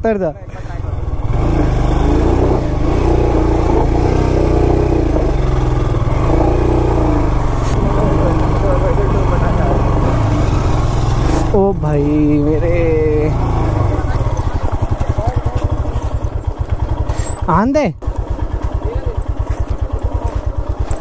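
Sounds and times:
motorcycle engine revving: 0.3s - 21.0s.

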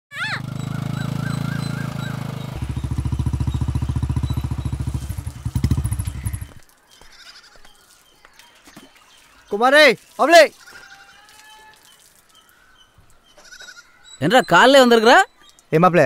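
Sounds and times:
motorcycle engine running: 0.2s - 6.6s.

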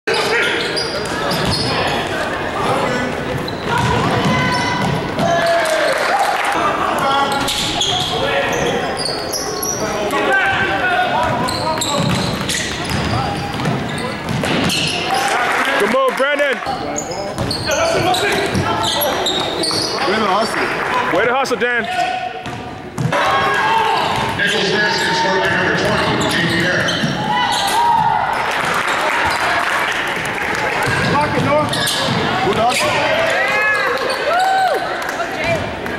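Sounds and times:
shoes squeaking: 0.1s - 2.1s, 7.2s - 10.2s, 11.2s - 15.3s, 16.6s - 20.6s, 25.8s - 28.0s, 30.8s - 33.1s
chatter and shouts: 0.1s - 35.9s
basketball dribbled on court: 11.2s - 15.0s.

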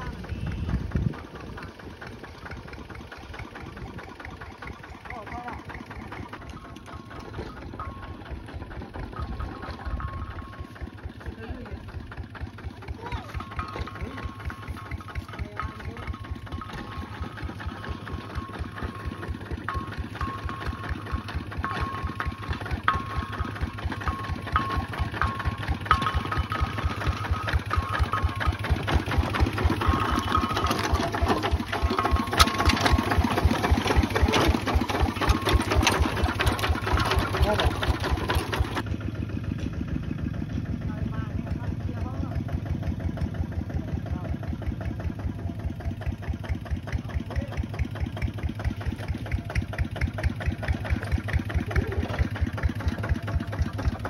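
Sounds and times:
diesel tractor engine thudding: 0.0s - 54.0s.

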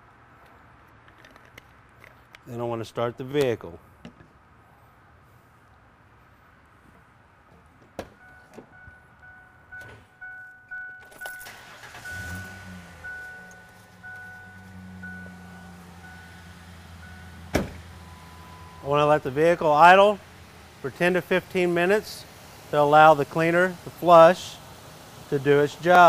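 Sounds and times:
warning chime beeping: 8.2s - 20.0s
truck engine starting and idling: 8.2s - 26.0s
car door shutting: 11.0s - 16.6s, 17.2s - 18.8s.

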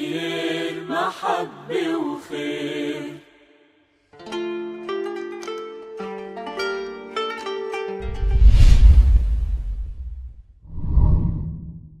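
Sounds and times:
low rumbling swoosh: 8.0s - 12.0s.

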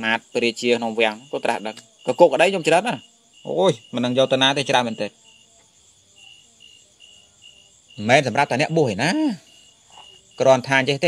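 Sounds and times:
man speaking: 0.0s - 5.2s, 8.0s - 9.6s, 10.3s - 11.0s
faint high-pitched chirping: 0.0s - 11.0s.

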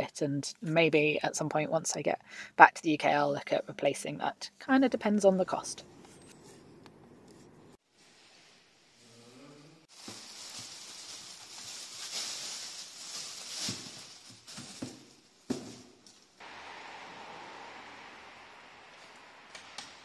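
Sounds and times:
plastic packaging crinkling: 9.9s - 15.2s
steady hiss: 16.2s - 20.0s.

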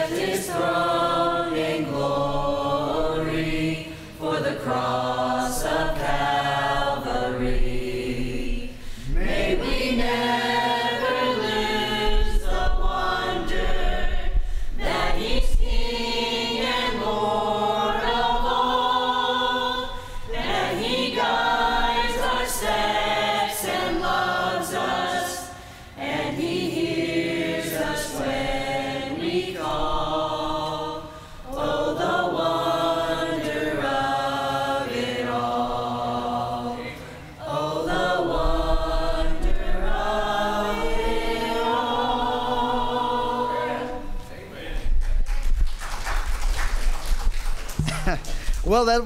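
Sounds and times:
group singing a chorus: 0.0s - 45.0s.

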